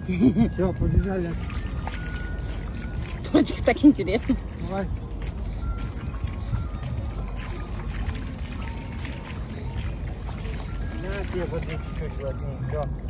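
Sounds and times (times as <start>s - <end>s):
feet wading through water: 0.0s - 13.0s.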